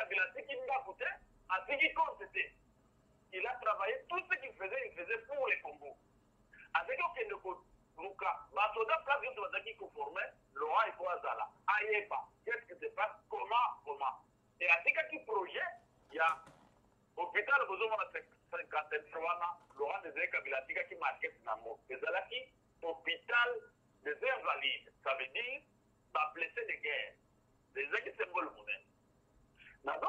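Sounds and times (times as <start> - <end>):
person talking over telephone line: 0.0 - 2.5, 3.3 - 6.0, 6.6 - 16.5, 17.2 - 28.9, 29.6 - 30.0.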